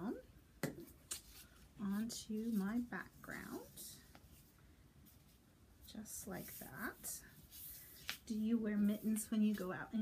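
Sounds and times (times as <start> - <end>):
faint paper rustle: 6.2 - 9.9.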